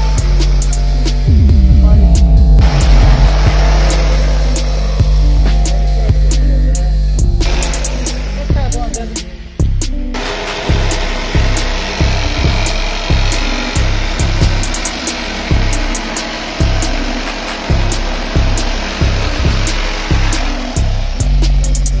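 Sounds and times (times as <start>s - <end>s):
electric blower running: 0.0s - 22.0s
music with heavy bass beat: 0.0s - 22.0s.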